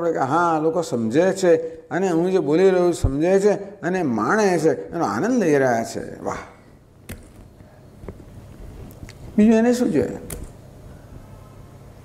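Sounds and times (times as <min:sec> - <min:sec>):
man speaking: 0:00.0 - 0:06.7, 0:09.4 - 0:10.4
faint low hum: 0:00.0 - 0:12.0.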